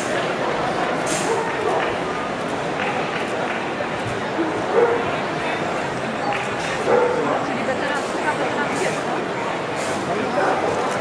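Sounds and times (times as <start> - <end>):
crowd chatter: 0.0 - 11.0
dog barking: 1.2 - 2.0, 4.7 - 5.1, 6.8 - 7.2, 10.4 - 10.8.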